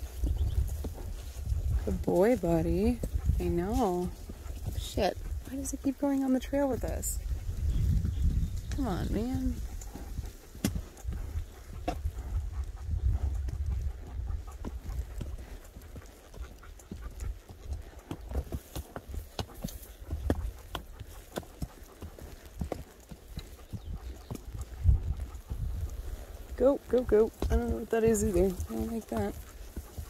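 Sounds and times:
hooves on dirt trail: 0:00.0 - 0:30.0.

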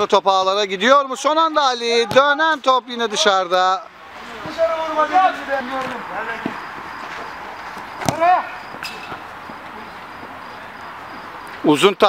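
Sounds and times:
faint outdoor noise: 0:00.0 - 0:12.0
players calling: 0:00.0 - 0:12.0.

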